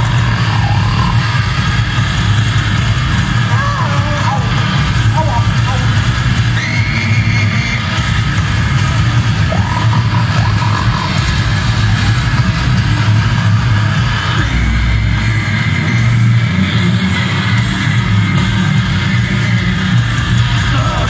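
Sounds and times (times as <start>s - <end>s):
distorted guitars and bass: 0.0s - 21.0s
fast dense drumming: 0.0s - 21.0s
grindcore band playing live: 0.0s - 21.0s.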